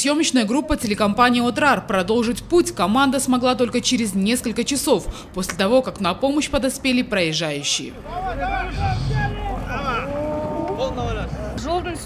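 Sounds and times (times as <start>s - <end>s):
steady low rumble: 0.6s - 12.0s.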